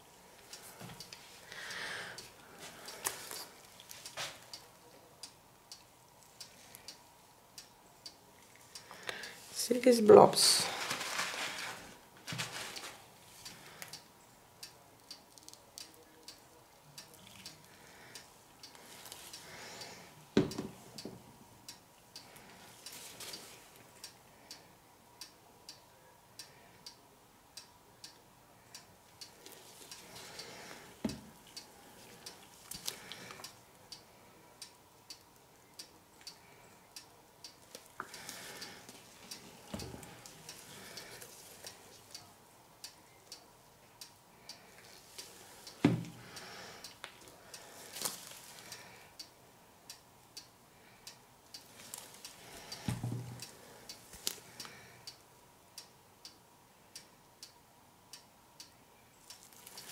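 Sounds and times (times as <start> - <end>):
faint steady ticking: 0.0 - 9.6, 12.0 - 59.9
squeeze bottle handling noises: 10.6 - 13.0.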